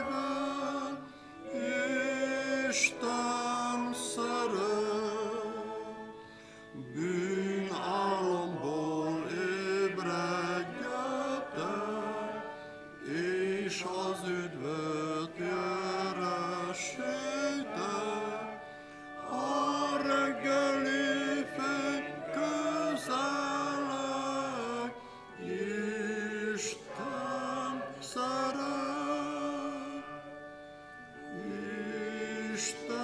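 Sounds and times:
congregation singing a hymn: 0.0 - 33.0.

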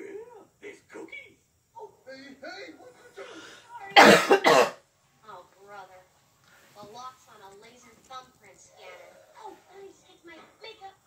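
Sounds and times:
person coughing: 4.0 - 4.8.

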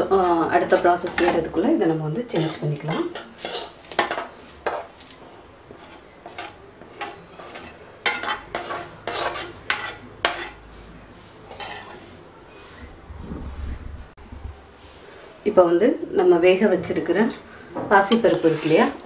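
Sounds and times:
metal spatula scraping a pan: 0.1 - 10.7, 11.3 - 12.9, 17.3 - 19.0
spatula clinking on steel plate: 2.4 - 10.6, 11.5 - 12.0.

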